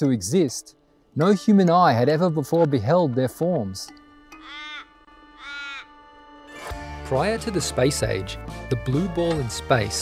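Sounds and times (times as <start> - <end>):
bird cawing: 4.3 - 6.2.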